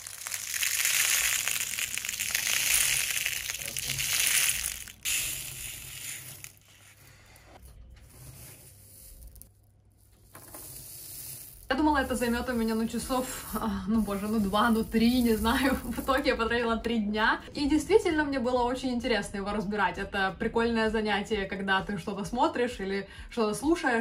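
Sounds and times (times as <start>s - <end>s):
beads pouring onto fabric: 0.0s - 9.5s, 10.2s - 16.3s
beads rustling and clicking: 0.0s - 16.3s.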